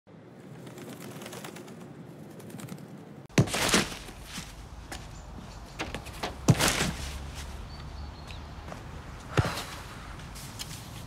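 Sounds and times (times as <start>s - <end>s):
birds calling: 3.3s - 10.4s.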